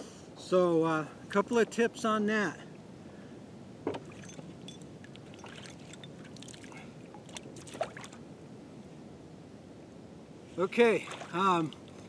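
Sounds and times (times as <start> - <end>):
water sloshing around wading person: 4.0 - 8.2, 10.6 - 12.0.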